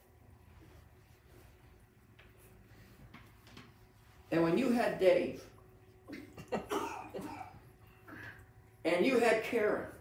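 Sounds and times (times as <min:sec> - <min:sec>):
person coughing or chuckling: 0:06.1 - 0:08.2.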